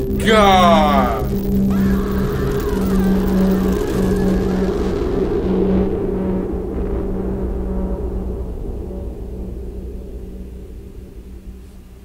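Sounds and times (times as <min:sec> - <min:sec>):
faint wavering tones: 0:00.0 - 0:12.0
low rumbling drone: 0:00.0 - 0:12.0
pulsing hum: 0:00.0 - 0:12.0.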